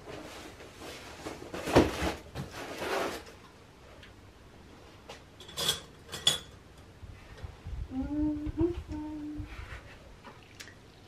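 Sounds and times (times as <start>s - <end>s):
woman humming: 7.8s - 9.6s.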